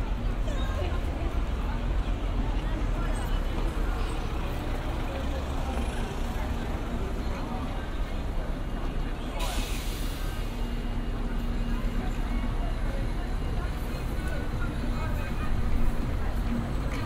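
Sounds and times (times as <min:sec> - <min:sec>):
passersby talking: 0:00.0 - 0:17.0
road traffic: 0:00.0 - 0:17.0.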